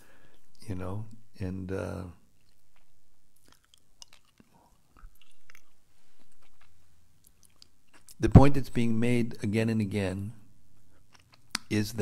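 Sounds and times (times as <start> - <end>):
quiet breaths: 0.0 - 0.6, 4.4 - 6.6
lip and tongue clicks: 2.4 - 8.2.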